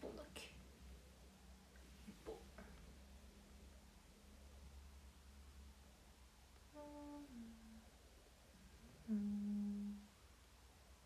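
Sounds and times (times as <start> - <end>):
woman humming: 6.7 - 7.9, 9.0 - 10.1.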